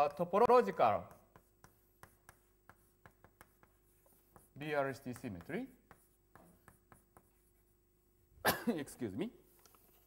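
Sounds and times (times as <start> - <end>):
chalk tapping and scratching: 0.4 - 7.8, 9.4 - 10.0.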